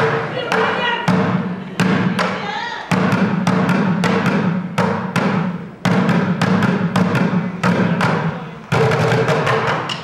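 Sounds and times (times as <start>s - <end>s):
drumsticks striking buckets: 0.0s - 10.0s.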